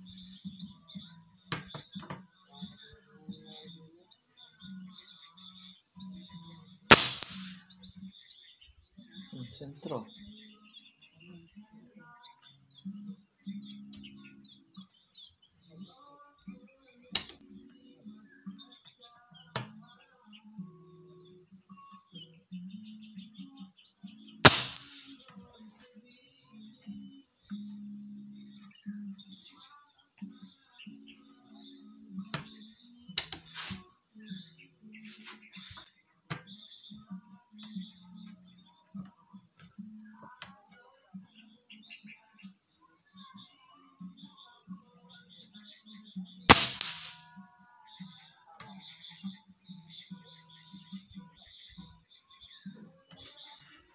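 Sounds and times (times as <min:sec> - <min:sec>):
crickets droning: 0:00.0 - 0:53.9
air rifle shot: 0:06.9 - 0:07.6, 0:24.4 - 0:25.0, 0:46.5 - 0:47.2.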